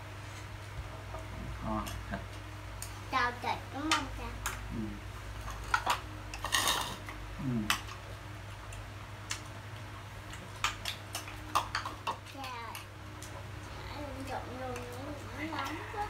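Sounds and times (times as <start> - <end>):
steady low hum: 0.0 - 16.0
soft voices: 3.1 - 5.1, 7.4 - 7.8, 13.6 - 16.0
chopsticks clicking against bowls: 8.6 - 13.4.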